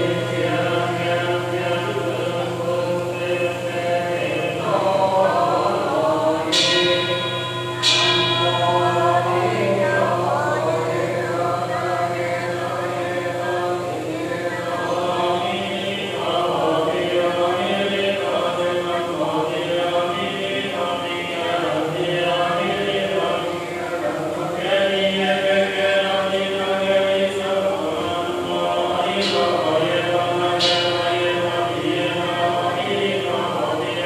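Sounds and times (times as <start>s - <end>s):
congregation chanting prayers: 0.0s - 34.0s
bell struck: 5.5s - 16.5s, 29.2s - 33.3s.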